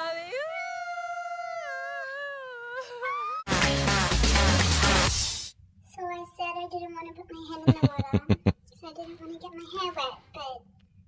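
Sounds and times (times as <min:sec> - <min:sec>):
woman singing: 0:00.0 - 0:03.4
woman laughing: 0:07.6 - 0:08.6.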